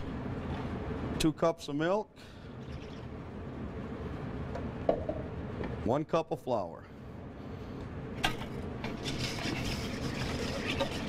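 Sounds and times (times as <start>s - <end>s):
whisk beating batter in metal bowl: 8.9s - 11.0s.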